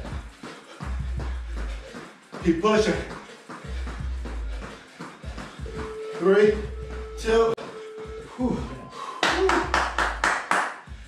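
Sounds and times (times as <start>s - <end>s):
hand claps: 9.2s - 11.0s.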